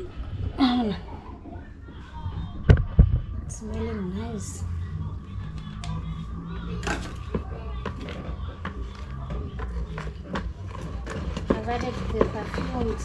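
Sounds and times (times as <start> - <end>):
steady low hum: 0.0 - 13.0
stick stirring thick liquid: 5.5 - 13.0.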